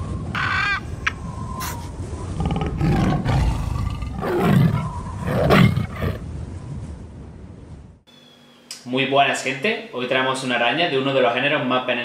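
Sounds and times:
tiger roaring: 0:01.6 - 0:06.2.

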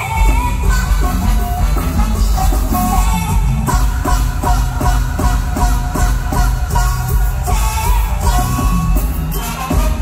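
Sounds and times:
live band music through pa: 0:00.0 - 0:10.0.

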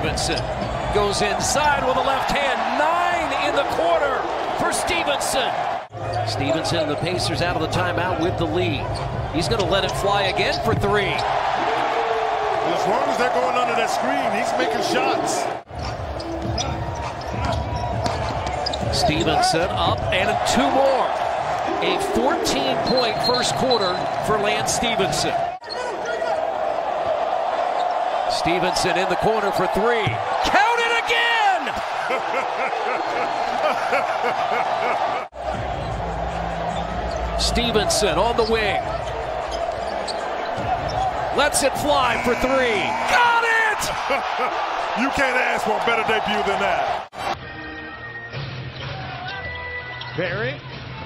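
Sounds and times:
crowd noise hum: 0:00.0 - 0:47.3.

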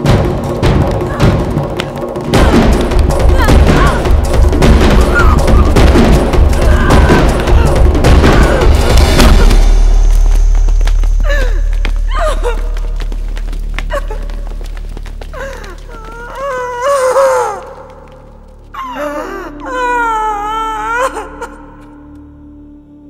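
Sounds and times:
deep low rumble: 0:02.3 - 0:16.2
woman wailing: 0:06.5 - 0:09.0.

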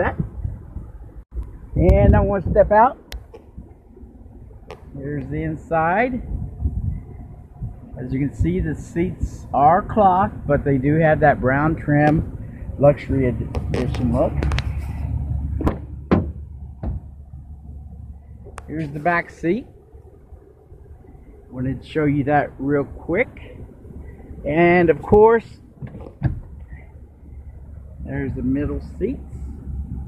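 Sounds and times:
low rumble of movement: 0:00.0 - 0:30.0
car door handle and latch clicks: 0:15.6 - 0:17.0, 0:25.8 - 0:26.7.

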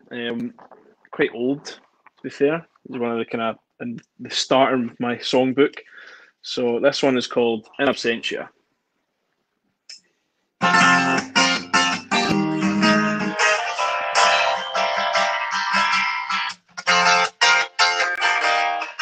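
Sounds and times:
guitar strumming chords: 0:10.6 - 0:19.0.

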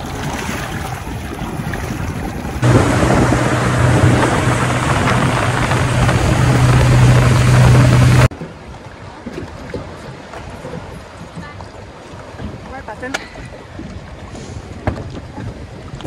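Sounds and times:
outboard motor humming: 0:00.0 - 0:16.0
rush of wind and water: 0:00.0 - 0:16.0.

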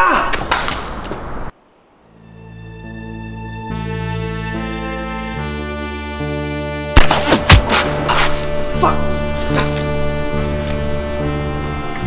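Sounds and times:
person crying out: 0:00.0 - 0:00.4, 0:08.7 - 0:09.2.

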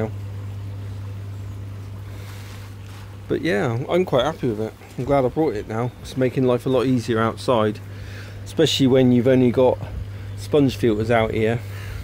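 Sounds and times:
pond vacuum humming: 0:00.0 - 0:12.0.

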